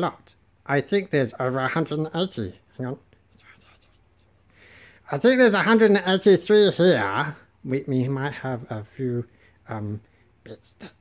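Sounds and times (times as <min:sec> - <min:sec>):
soft breathy hiss: 0:00.1 - 0:11.0
faint whispered muttering: 0:03.3 - 0:04.5.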